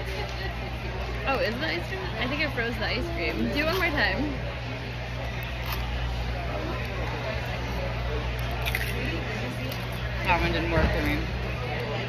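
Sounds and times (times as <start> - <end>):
faint voices: 0.0 - 12.0
low hum of indoor hall: 0.0 - 12.0
chewing frozen cereal: 5.2 - 6.1, 8.3 - 10.3.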